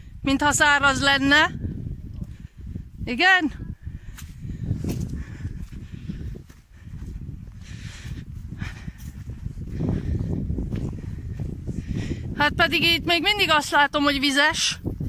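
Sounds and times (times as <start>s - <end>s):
microphone rumble: 0.0s - 13.6s
footsteps on wet grass: 4.1s - 11.8s.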